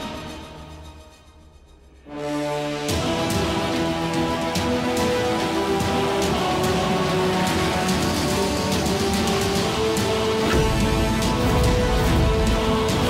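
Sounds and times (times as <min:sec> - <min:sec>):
sustained dramatic tones: 0:00.0 - 0:13.0.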